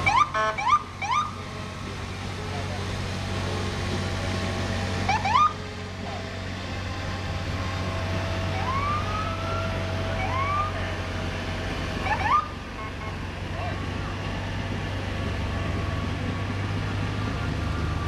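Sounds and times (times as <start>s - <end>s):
ambulance siren chirps: 0.0s - 1.4s, 5.1s - 5.6s, 8.5s - 10.8s, 12.0s - 13.2s
vehicle engines humming: 0.0s - 18.0s.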